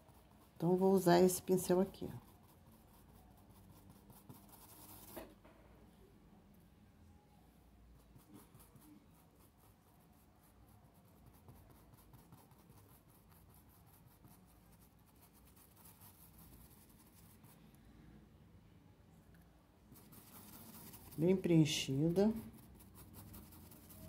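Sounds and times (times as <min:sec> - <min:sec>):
paintbrush dabbing on fabric: 0:00.0 - 0:05.3, 0:07.9 - 0:17.7, 0:20.0 - 0:24.0.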